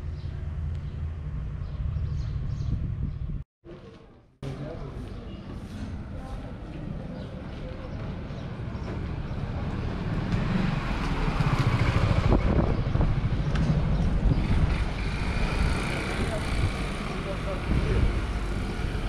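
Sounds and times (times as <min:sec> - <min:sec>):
motor scooter passing: 0:09.2 - 0:19.0.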